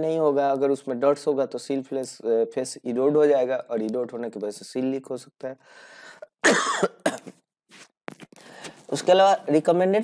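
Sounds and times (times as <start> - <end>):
man coughing: 6.4 - 7.4.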